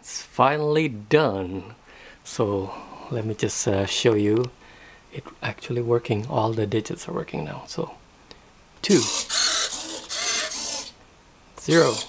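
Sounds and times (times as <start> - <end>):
servos whirring: 8.8 - 11.0, 11.6 - 12.0.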